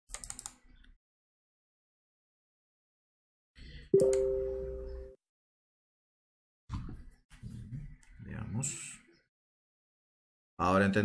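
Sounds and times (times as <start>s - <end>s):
computer keyboard clicks: 0.1s - 0.6s.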